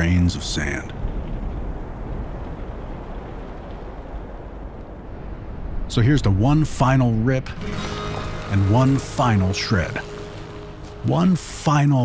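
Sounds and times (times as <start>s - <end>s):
low rumbling drone: 5.1s - 11.8s.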